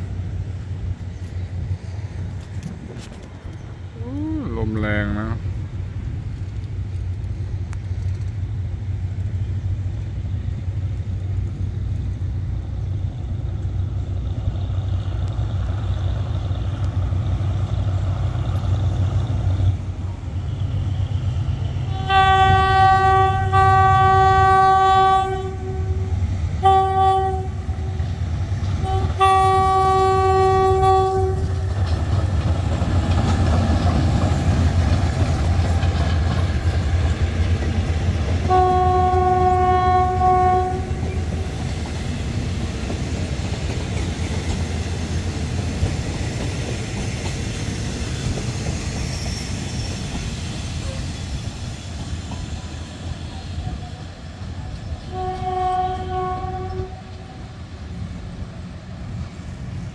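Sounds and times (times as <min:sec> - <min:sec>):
locomotive engine rumble: 0:00.0 - 0:59.9
train air horn blasts: 0:21.9 - 0:28.1, 0:28.8 - 0:31.6, 0:38.5 - 0:41.4, 0:55.0 - 0:57.4.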